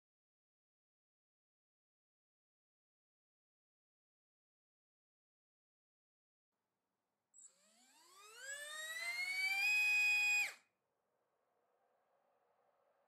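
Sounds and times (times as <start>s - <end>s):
electric motor high whine: 7.4s - 10.6s.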